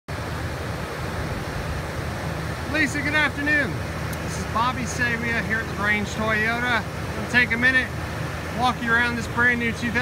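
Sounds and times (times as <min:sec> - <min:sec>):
wind buffeting microphone: 0:00.1 - 0:07.2.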